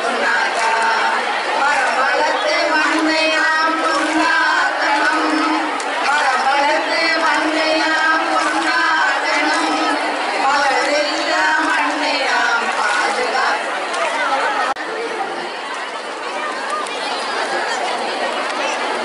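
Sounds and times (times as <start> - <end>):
crowd hubbub: 0.0 - 19.0
women's voices chattering and calling: 0.0 - 19.0.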